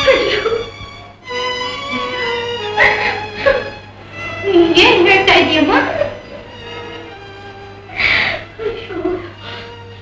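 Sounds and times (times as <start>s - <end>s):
woman crying and sobbing: 0.0s - 0.9s, 1.7s - 7.1s, 7.9s - 9.9s.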